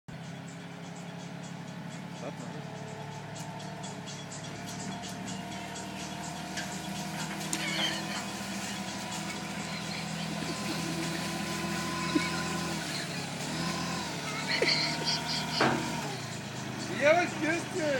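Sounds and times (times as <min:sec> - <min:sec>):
diesel engine running: 0:00.1 - 0:17.9.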